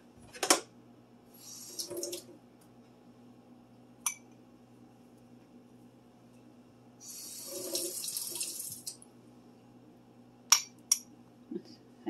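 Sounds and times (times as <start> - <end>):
kitchen tap running: 1.4 - 2.3, 7.0 - 9.0.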